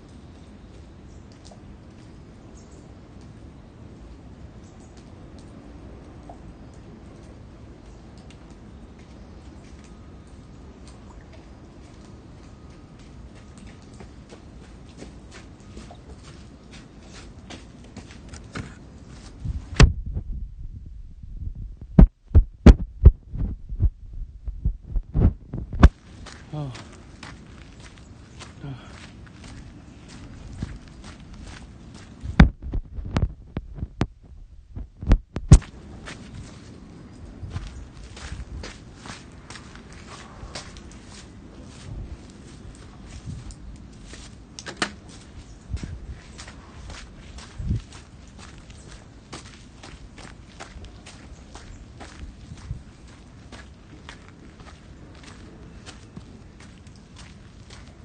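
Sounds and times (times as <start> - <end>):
phone microphone handling noise: 18.6 - 26.0, 32.3 - 35.7
footsteps: 21.8 - 36.8.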